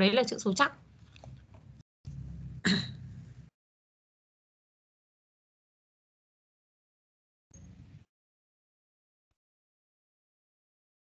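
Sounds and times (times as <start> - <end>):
low microphone hum: 0.7 - 3.5.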